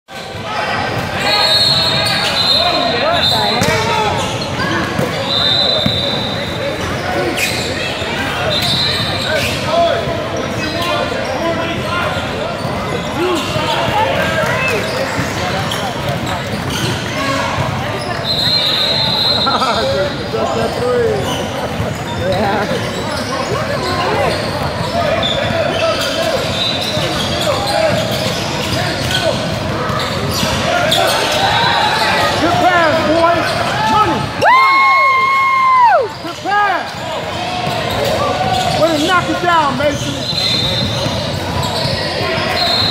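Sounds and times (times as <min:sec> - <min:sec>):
sneakers squeaking on court: 0:00.2 - 0:34.4, 0:36.1 - 0:42.9.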